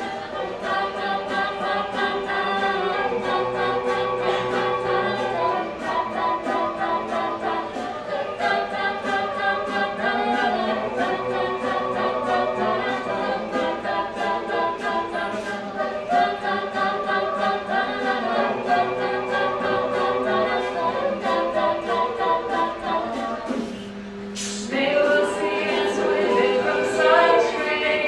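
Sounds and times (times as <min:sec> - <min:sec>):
a cappella group singing: 0:00.0 - 0:28.0
vocal percussion beat: 0:00.0 - 0:28.0.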